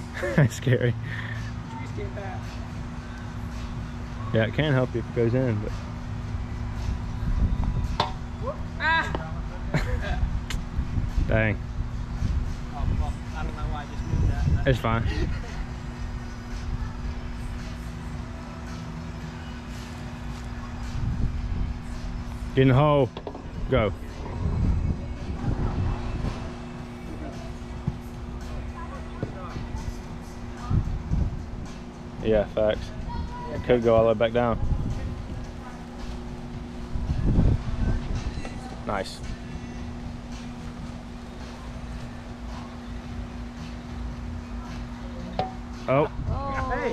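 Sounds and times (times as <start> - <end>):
steady low hum: 0.0 - 46.9
steady low rumble: 0.0 - 46.9
uneven low rumble: 23.4 - 31.7
faint voices: 23.6 - 46.9.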